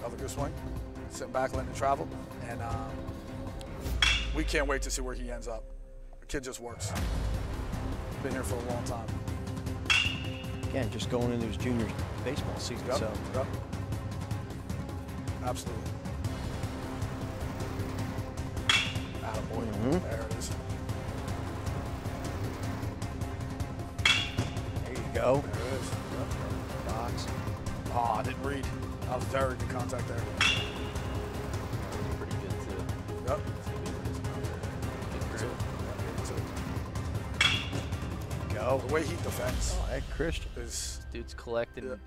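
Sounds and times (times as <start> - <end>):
background music: 0.0 - 42.0
baseball bat hitting ball: 4.0 - 4.4, 9.9 - 10.6, 18.6 - 19.2, 24.0 - 24.6, 30.4 - 31.0, 37.4 - 37.9.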